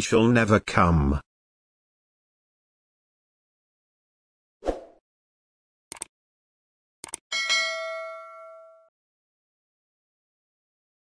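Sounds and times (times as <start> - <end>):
mouse clicks: 5.9 - 6.1
bright bell ding: 7.3 - 8.9.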